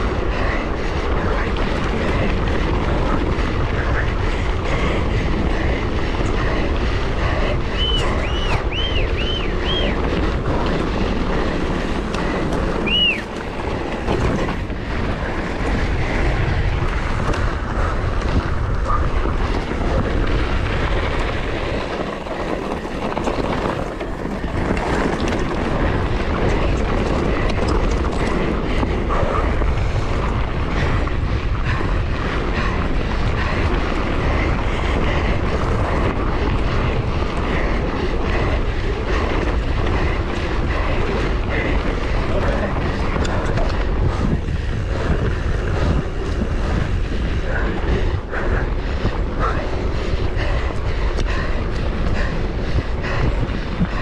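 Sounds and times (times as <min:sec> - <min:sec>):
wind rush on microphone: 0:00.0 - 0:54.0.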